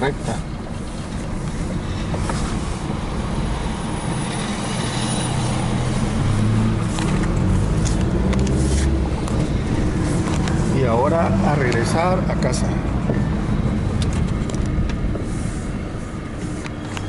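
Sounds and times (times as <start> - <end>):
car engine running: 0.0 - 17.0.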